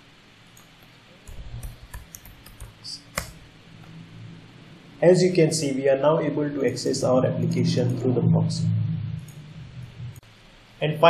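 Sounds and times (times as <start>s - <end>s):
keyboard typing: 0.5s - 3.5s.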